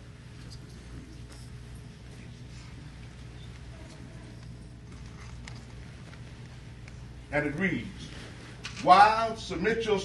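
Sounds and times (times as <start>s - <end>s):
faint clicks and rustles: 0.2s - 8.9s.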